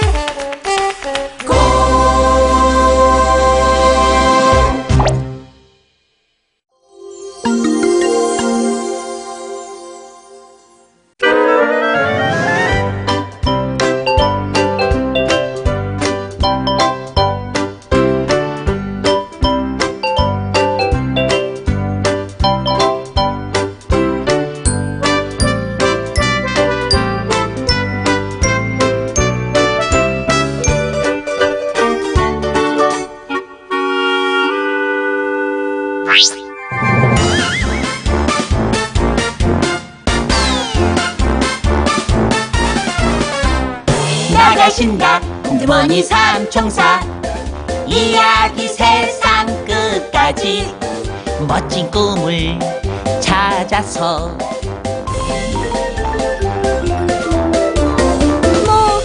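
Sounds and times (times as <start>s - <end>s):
upbeat children's music: 0.0s - 5.6s, 11.2s - 33.5s, 36.1s - 59.0s
rising pop sound effect: 4.9s - 5.4s, 36.1s - 38.4s
cartoon music final chord: 36.0s - 38.3s.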